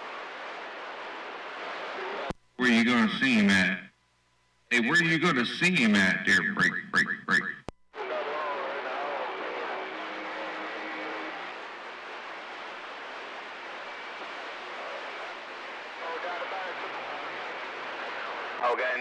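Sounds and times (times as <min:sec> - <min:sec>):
faint garbled radio voices: 0:00.0 - 0:04.0, 0:04.6 - 0:19.0
radio static hiss: 0:00.0 - 0:19.0.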